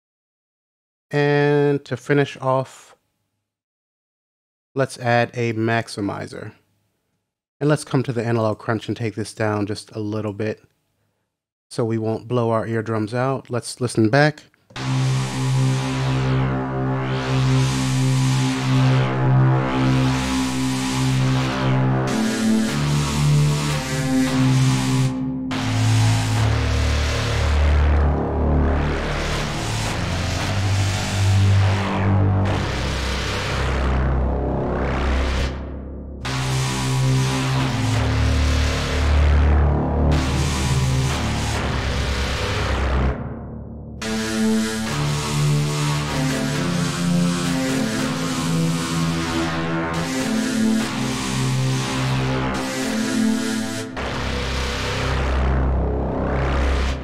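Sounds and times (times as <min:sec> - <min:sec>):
low sweeping synth notes: 0:14.8 - 0:57.0.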